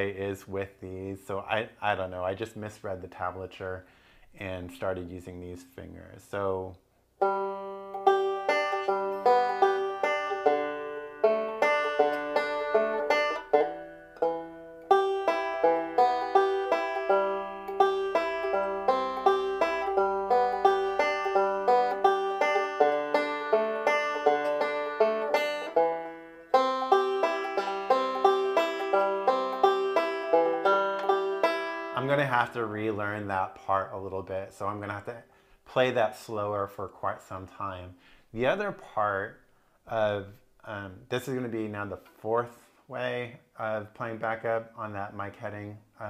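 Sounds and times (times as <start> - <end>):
banjo fingerpicking: 6.4 - 36.9.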